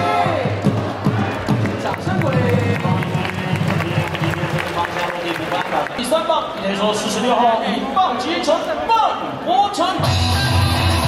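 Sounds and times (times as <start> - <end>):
ballpark crowd noise: 0.0 - 11.0
music over sound system: 10.0 - 11.0.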